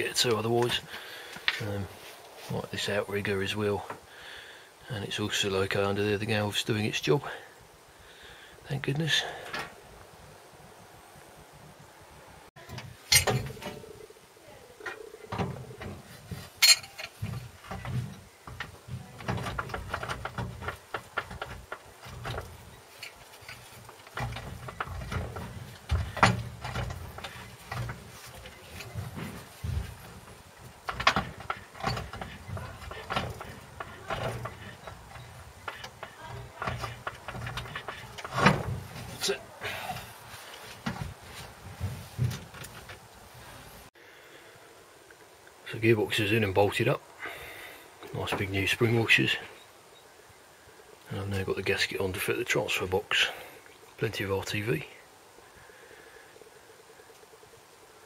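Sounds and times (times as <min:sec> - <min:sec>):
metal knocks and clanks: 0:12.6 - 0:13.9, 0:15.3 - 0:40.1.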